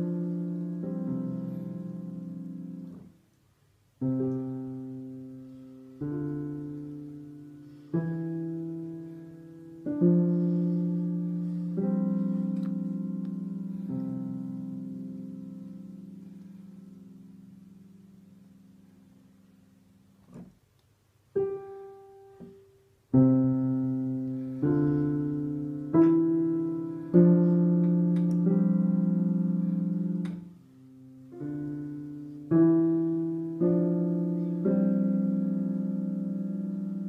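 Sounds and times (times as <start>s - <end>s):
digital piano played slowly: 0.0s - 20.5s, 21.2s - 37.0s.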